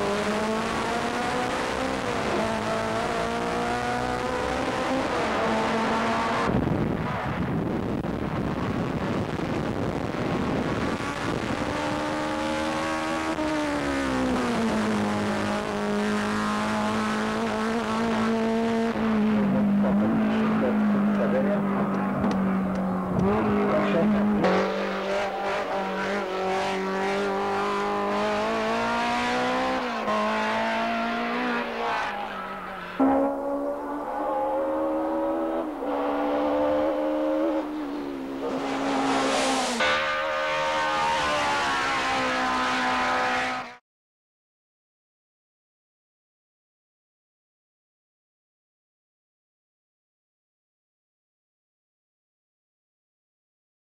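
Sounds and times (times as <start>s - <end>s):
race car engine at high revs: 0.0s - 43.8s.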